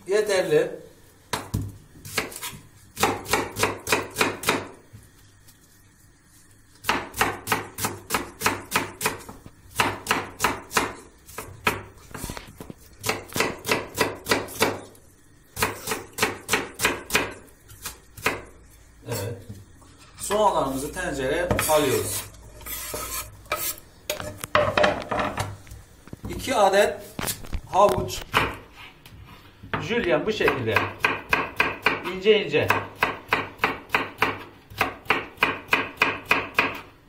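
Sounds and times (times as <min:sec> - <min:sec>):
knife chopping on wooden board: 0:01.3 - 0:04.8, 0:06.8 - 0:12.3, 0:13.0 - 0:14.8, 0:15.6 - 0:18.5, 0:28.3 - 0:28.6, 0:29.7 - 0:36.9.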